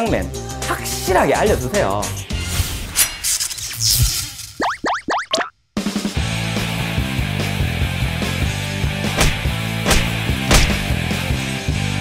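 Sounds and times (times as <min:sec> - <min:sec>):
background music with steady beat: 0:05.9 - 0:12.0.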